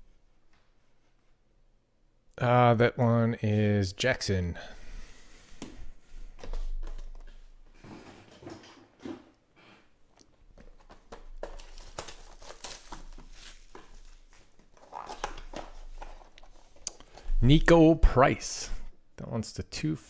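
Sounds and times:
cardboard box rustling: 10.6 - 16.8.

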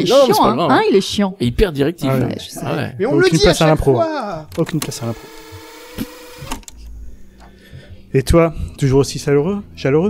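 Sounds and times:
tape machine whirring: 4.4 - 7.0
tape machine clicks: 4.5 - 6.8.

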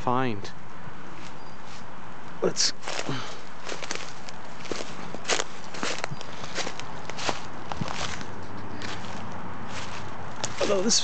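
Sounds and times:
footsteps through dry leaves: 2.6 - 11.0
dry stems brushing and snapping: 2.8 - 11.0.

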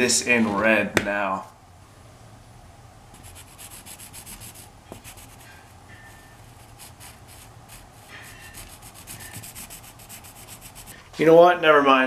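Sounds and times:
marker scratching on wall: 3.1 - 11.0.

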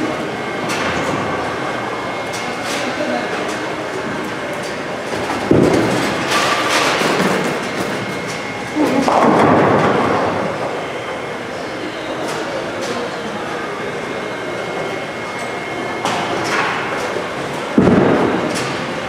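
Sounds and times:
bowling balls rolling: 5.0 - 11.3
bowling pins crashing: 8.9 - 10.6.

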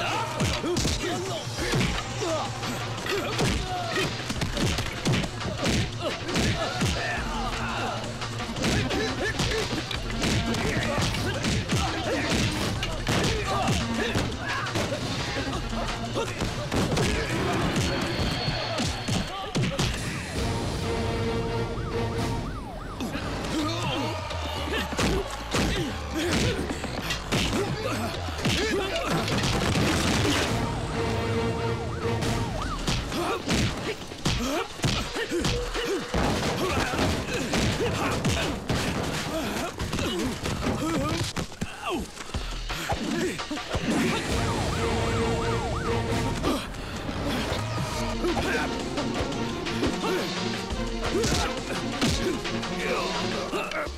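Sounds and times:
men shouting and grunting: 0.0 - 21.6, 22.7 - 53.9
background music: 0.0 - 53.9
siren sweeping up and down: 20.3 - 24.5, 30.4 - 33.5, 44.1 - 47.8.

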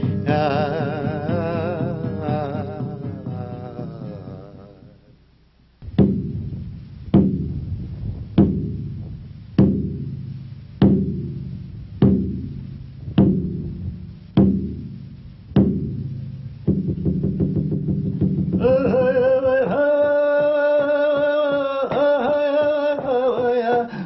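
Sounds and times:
drum beaten slowly: 0.0 - 24.0.

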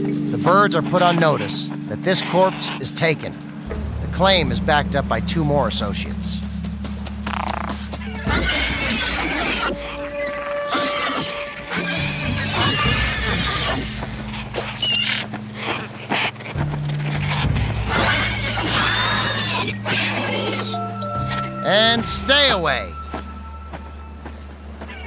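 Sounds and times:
birds squawking and screeching: 0.0 - 3.7, 4.3 - 25.0
low sustained orchestral notes: 0.0 - 25.0.

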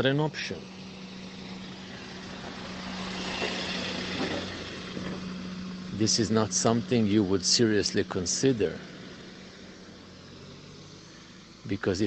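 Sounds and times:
engine drone: 0.0 - 12.0.

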